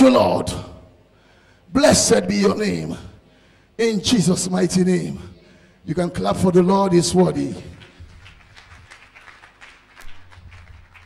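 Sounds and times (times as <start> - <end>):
congregation clapping: 7.4 - 11.0.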